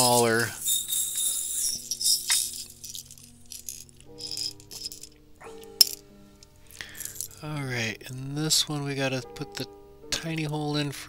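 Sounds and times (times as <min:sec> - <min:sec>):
small beads rattling and clicking: 0:00.0 - 0:06.0, 0:06.8 - 0:07.4.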